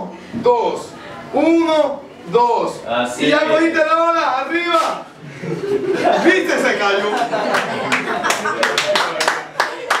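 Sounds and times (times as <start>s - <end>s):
people talking: 0.0s - 10.0s
laughter: 5.2s - 8.8s
person clapping hands: 7.2s - 10.0s.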